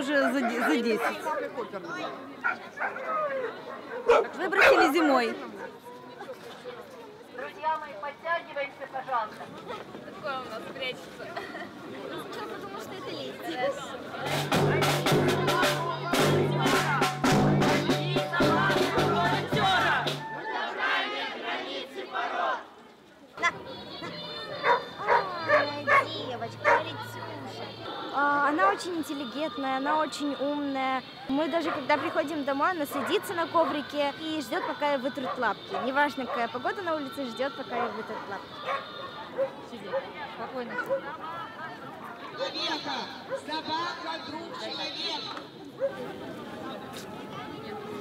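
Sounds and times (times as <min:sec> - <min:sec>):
crowd talking: 0:00.0 - 0:48.0
dog barking: 0:02.4 - 0:04.9, 0:24.6 - 0:26.9, 0:31.6 - 0:32.2, 0:37.8 - 0:41.1.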